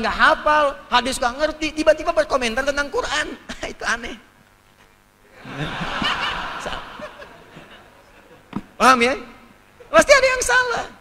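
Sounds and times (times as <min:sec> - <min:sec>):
audience laughing: 0:05.3 - 0:08.6.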